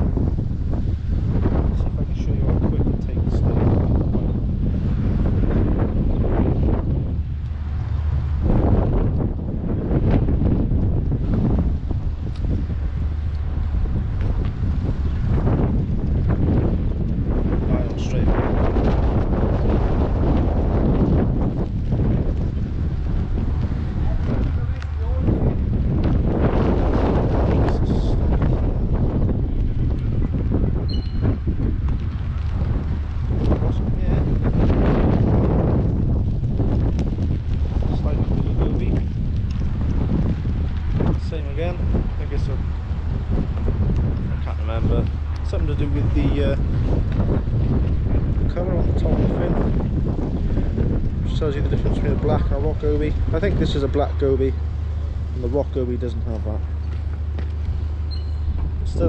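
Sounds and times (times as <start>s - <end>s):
gusty wind buffeting microphone: 0.0s - 59.0s.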